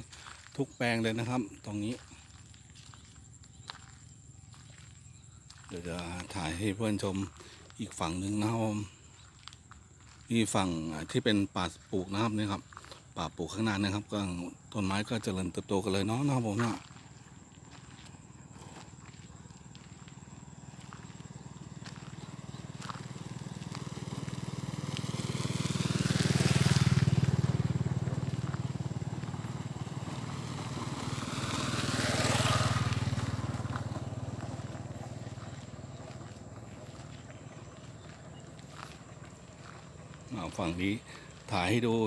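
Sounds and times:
vehicle engines passing: 0:09.9 - 0:42.0.

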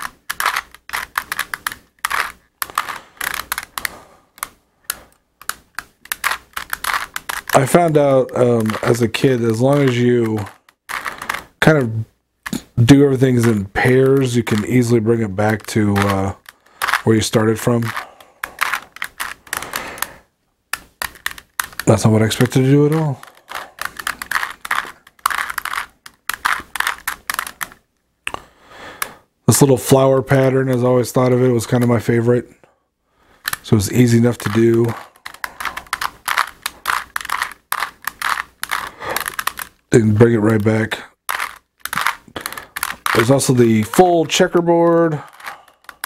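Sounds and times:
puzzle cube clicking as turned: 0:00.0 - 0:11.7, 0:12.4 - 0:29.2, 0:33.3 - 0:46.0.

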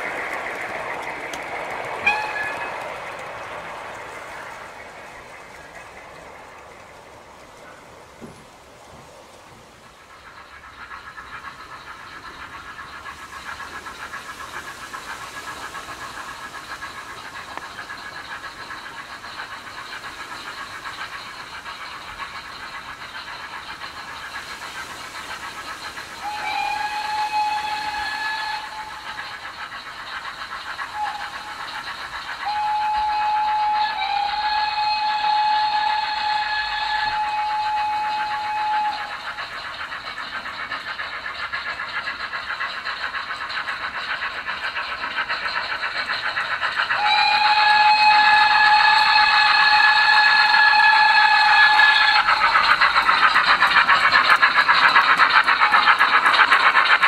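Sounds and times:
model locomotive chuffing: 0:00.0 - 0:57.0
model train steam whistle blasts: 0:02.0 - 0:02.9, 0:26.2 - 0:29.2, 0:32.3 - 0:39.4, 0:47.0 - 0:53.0.

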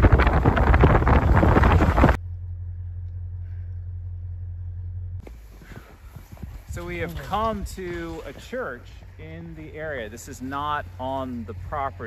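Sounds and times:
wind blasting across microphone: 0:00.0 - 0:02.2, 0:05.5 - 0:10.2
car rumble inside cabin: 0:00.0 - 0:07.6.

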